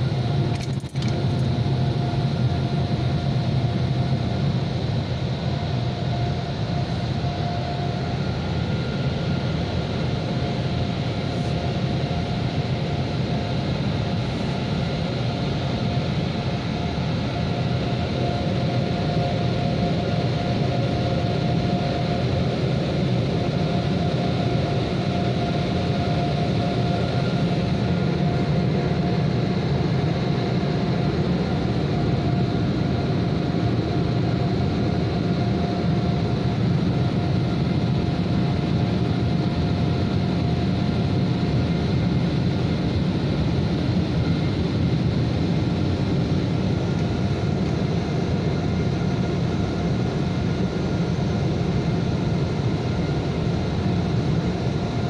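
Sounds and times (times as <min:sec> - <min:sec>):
steady machine whine: 0:00.0 - 0:55.0.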